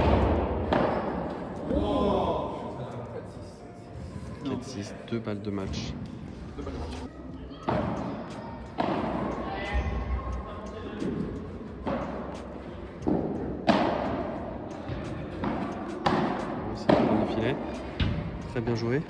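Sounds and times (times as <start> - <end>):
padel ball struck by rackets: 13.0 - 14.2, 15.4 - 17.3.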